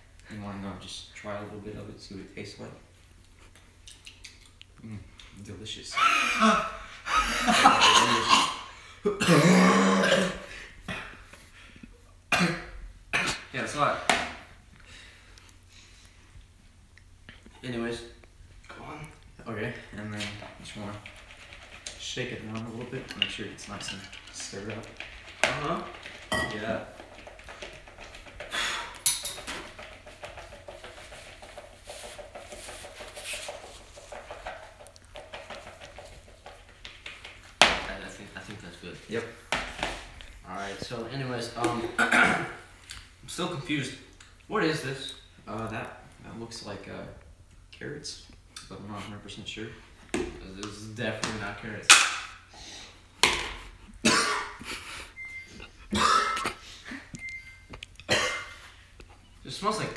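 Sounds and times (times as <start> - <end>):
boy coughing hard: 7.4 - 11.2, 12.3 - 13.5, 41.9 - 42.6, 54.0 - 54.6, 55.9 - 56.6, 58.1 - 58.6
spoon scraping plastic bowl: 20.1 - 37.6.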